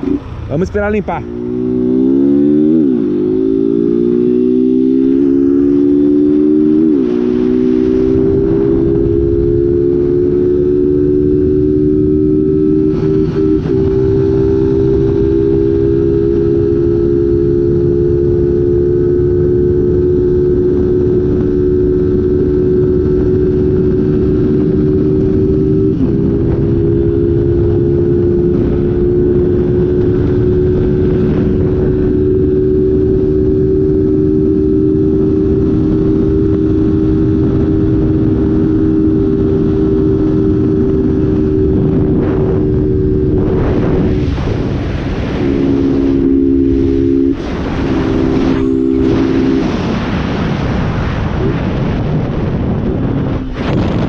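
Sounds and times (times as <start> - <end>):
motorcycle engine at full throttle: 0.0 - 54.0
wind rushing over microphone: 0.0 - 54.0.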